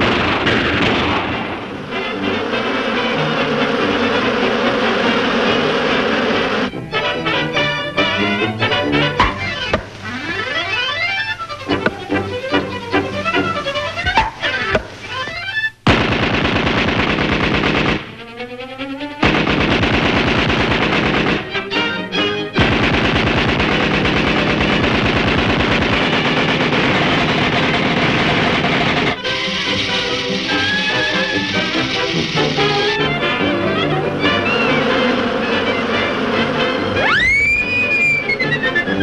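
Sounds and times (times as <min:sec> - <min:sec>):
orchestra playing held notes: 0:01.6 - 0:15.8, 0:21.5 - 0:22.6, 0:29.2 - 0:39.0
cartoon machine-gun rattle: 0:19.2 - 0:21.5, 0:22.6 - 0:33.0.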